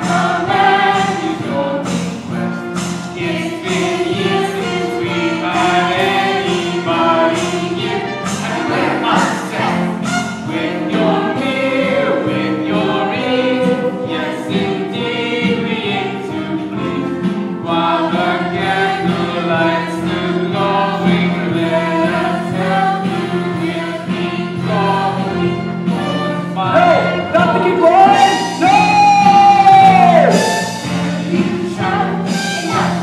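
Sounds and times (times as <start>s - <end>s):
ensemble choral singing: 0.0s - 33.0s
instrumental accompaniment: 0.0s - 33.0s.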